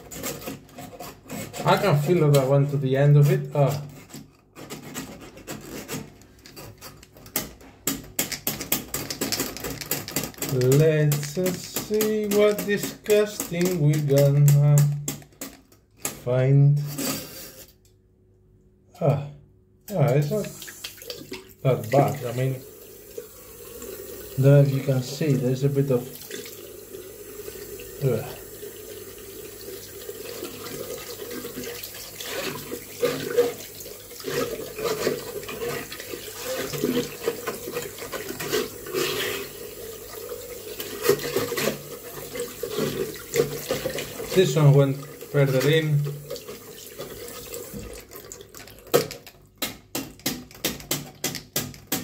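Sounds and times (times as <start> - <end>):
drain snake scraping metal plughole: 0.0 - 7.6, 34.2 - 39.6
wire scraping in drain: 0.0 - 16.2, 30.3 - 49.0
tap water running into sink: 7.9 - 15.6, 20.0 - 52.0.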